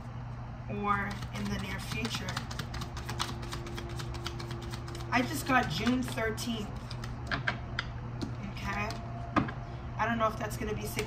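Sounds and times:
low steady hum: 0.0s - 11.0s
hands tapping cards on tabletop: 1.1s - 6.2s, 6.8s - 7.6s, 8.2s - 9.0s.

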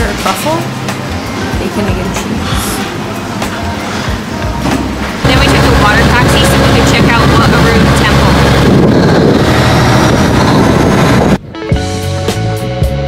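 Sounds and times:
boat engine drone: 5.2s - 11.4s
music with drums and guitar: 11.4s - 13.0s.

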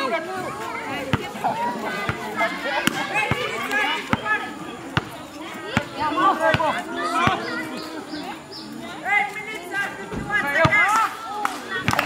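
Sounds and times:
people talking and calling out: 0.0s - 12.0s
basketball bouncing on concrete: 0.9s - 7.5s, 10.1s - 11.0s.

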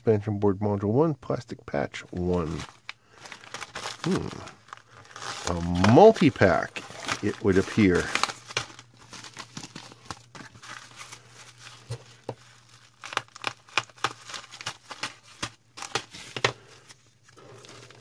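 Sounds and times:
plastic and foil bags crinkling: 2.0s - 18.0s
bags being torn open: 2.2s - 16.8s.

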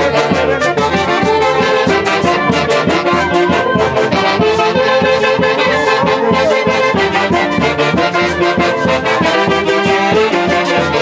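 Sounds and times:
bass drum beat: 0.0s - 11.0s
saxophones and trumpets: 0.0s - 11.0s.

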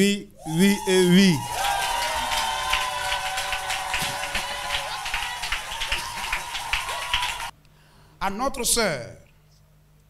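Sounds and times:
congregation clapping: 1.4s - 7.5s.

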